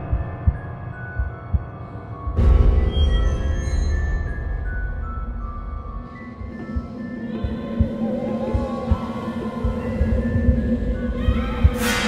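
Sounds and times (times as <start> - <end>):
low heartbeat-style thumps: 0.0 - 12.0
dark sustained drone: 4.2 - 12.0.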